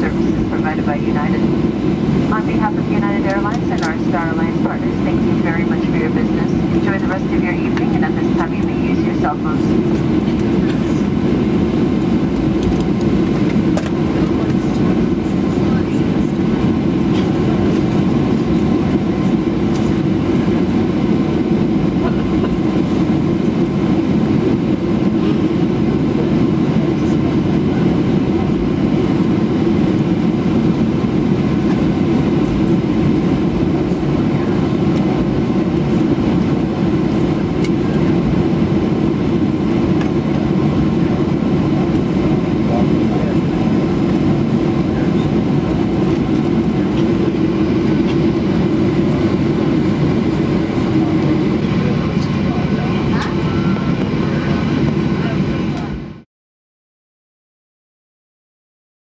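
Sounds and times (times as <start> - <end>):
air-conditioning rush: 0.0 - 56.0
jet engines idling: 0.0 - 56.1.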